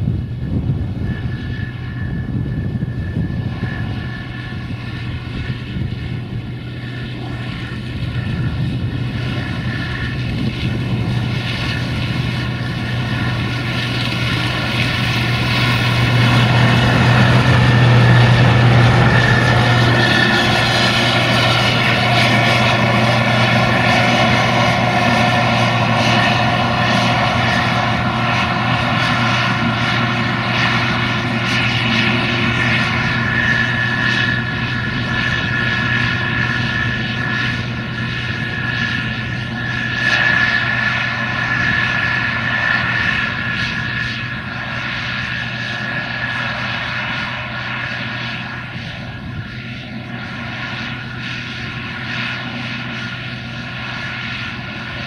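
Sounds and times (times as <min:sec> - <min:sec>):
combine harvester engine drone: 0:00.0 - 0:55.0
high machine whine: 0:00.0 - 0:55.0.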